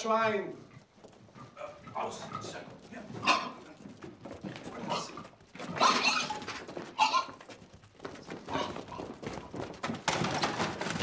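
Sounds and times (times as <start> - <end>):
pig squealing and grunting: 1.4 - 3.8, 4.6 - 7.4.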